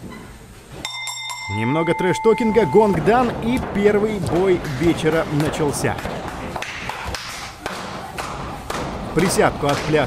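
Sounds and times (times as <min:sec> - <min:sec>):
feet thudding on ring canvas: 0:02.5 - 0:10.0.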